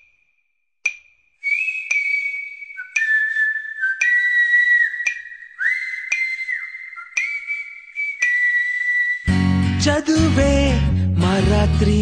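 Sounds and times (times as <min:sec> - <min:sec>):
steady ticking beat: 0:00.0 - 0:02.1, 0:04.9 - 0:06.4
whistled tune: 0:01.4 - 0:09.9.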